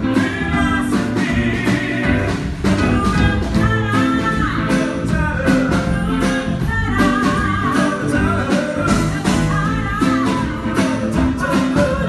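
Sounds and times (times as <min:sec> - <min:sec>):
drums: 0:00.0 - 0:12.0
man singing live: 0:00.0 - 0:12.0
piano: 0:00.0 - 0:12.0.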